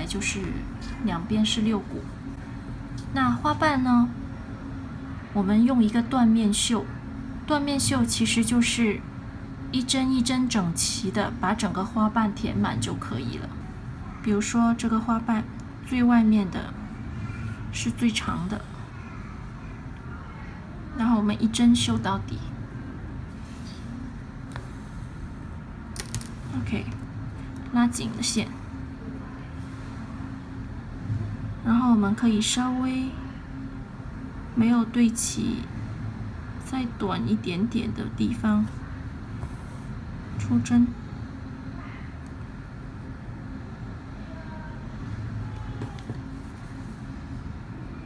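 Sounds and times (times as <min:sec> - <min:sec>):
low background hum: 0:00.0 - 0:48.0.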